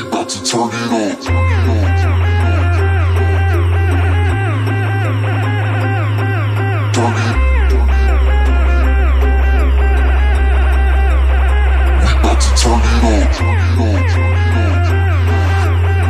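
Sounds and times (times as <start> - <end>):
deep synth bass note: 1.3 - 16.0
plucked synth riff: 1.3 - 16.0.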